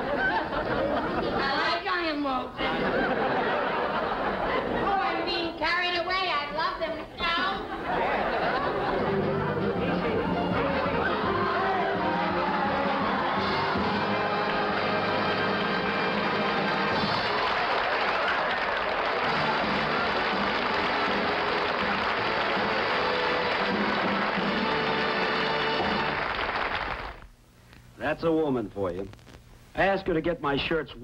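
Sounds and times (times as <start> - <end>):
audience applause and cheering: 8.0 - 27.2
music: 8.4 - 26.9.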